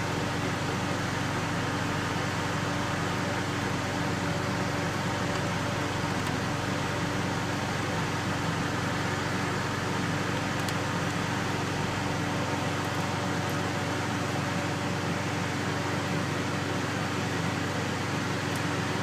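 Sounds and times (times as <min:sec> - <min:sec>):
fan hum and air rush: 0:00.0 - 0:19.0.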